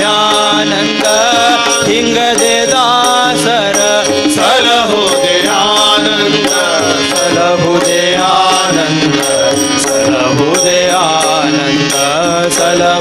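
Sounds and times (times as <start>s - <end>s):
bright strikes keeping time: 0.0s - 13.0s
harmonium: 0.0s - 13.0s
tabla: 0.0s - 13.0s
voices singing: 0.0s - 13.0s.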